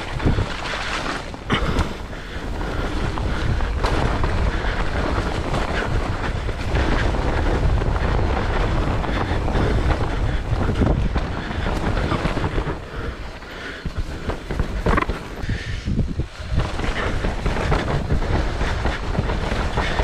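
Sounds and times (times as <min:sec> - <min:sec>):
bike knocking and rattling: 0:00.0 - 0:20.0
tyres rumbling on dirt trail: 0:00.0 - 0:20.0
wind rushing over microphone: 0:00.0 - 0:20.0.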